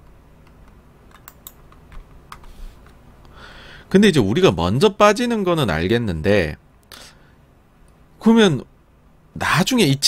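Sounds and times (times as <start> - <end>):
keyboard and mouse clicks: 0.0 - 3.0
low steady background noise: 0.0 - 10.0.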